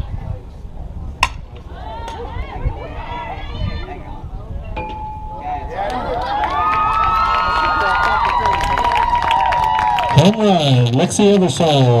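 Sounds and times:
bat hitting softball: 1.2 - 2.2
voices shouting and cheering: 1.5 - 12.0.

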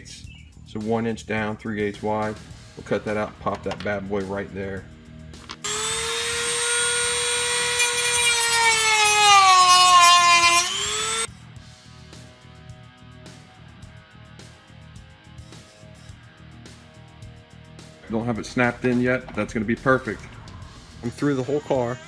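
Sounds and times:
rotary tool cutting plastic: 5.6 - 11.3
background music with guitar: 11.4 - 22.0.

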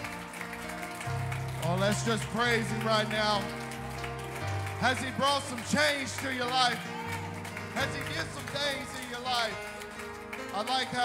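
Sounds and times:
keyboard and bass chord: 0.0 - 11.0.

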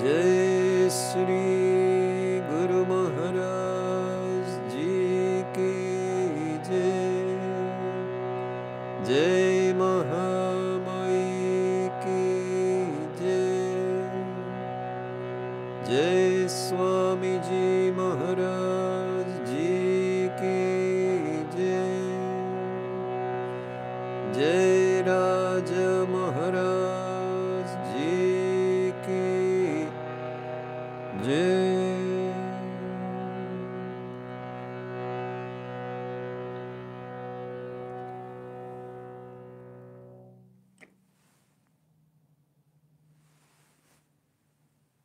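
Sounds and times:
man singing devotional song: 0.0 - 35.3
harmonium chords: 0.0 - 40.9.

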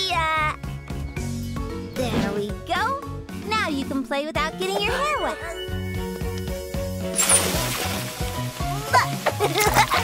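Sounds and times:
bouncy cartoon music: 0.0 - 10.0
water splash sound effect: 7.1 - 10.0.

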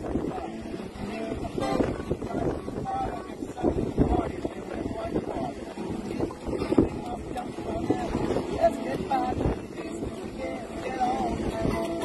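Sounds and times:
wind and water rushing: 0.0 - 12.0
wind buffeting microphone: 0.0 - 12.0.

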